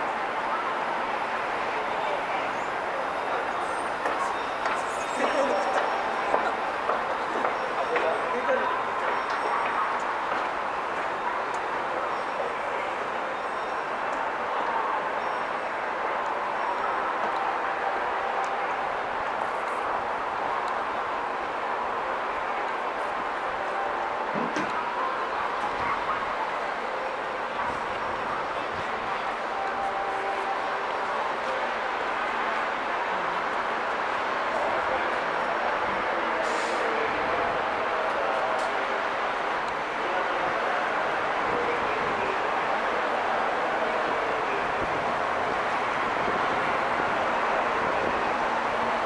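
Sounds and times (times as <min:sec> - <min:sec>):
murmur of distant voices: 0:00.0 - 0:49.0
traffic noise: 0:00.0 - 0:49.0.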